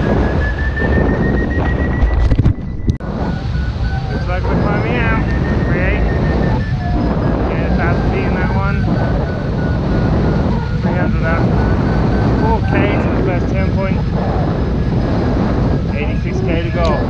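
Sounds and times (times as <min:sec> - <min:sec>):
strong wind buffeting microphone: 0:00.0 - 0:17.0
variometer beeping: 0:00.0 - 0:17.0.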